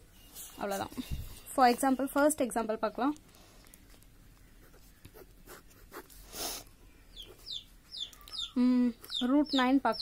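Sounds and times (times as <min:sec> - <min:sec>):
birds chirping: 0:06.8 - 0:10.0.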